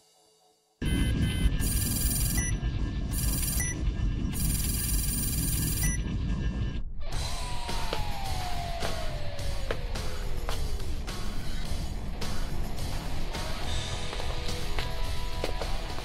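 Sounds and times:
high electronic beeping: 0.8 - 6.7.

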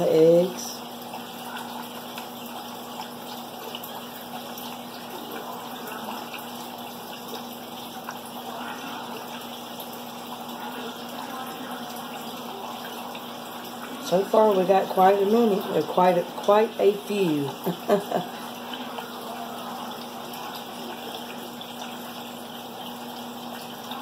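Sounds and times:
aquarium water running: 0.0 - 24.0.

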